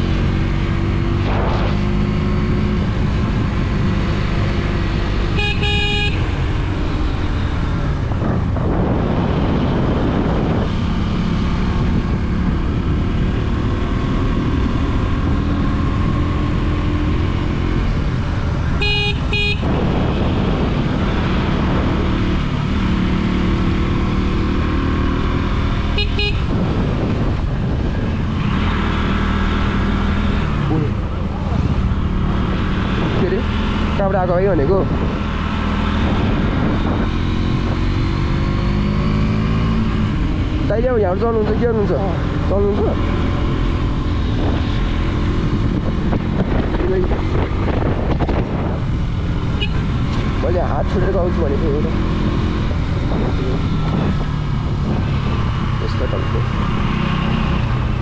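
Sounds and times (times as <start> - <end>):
wind noise: 0.0 - 58.0
vehicle horn honking: 5.3 - 6.4, 18.8 - 20.3, 26.0 - 26.5, 49.6 - 49.9.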